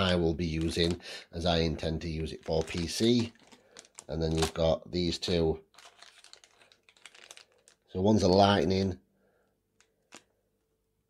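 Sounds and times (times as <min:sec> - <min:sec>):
plastic bag crinkling: 0:00.0 - 0:01.0, 0:02.0 - 0:08.3.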